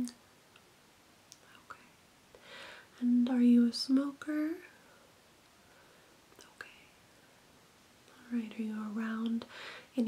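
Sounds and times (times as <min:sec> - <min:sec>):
soft breath in: 0:02.4 - 0:03.0, 0:09.5 - 0:10.0.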